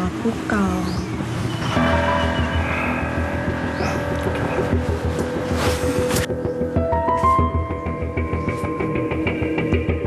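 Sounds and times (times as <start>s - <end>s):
low pulsing bass: 1.2s - 6.9s
dramatic music with held chords: 1.2s - 10.0s.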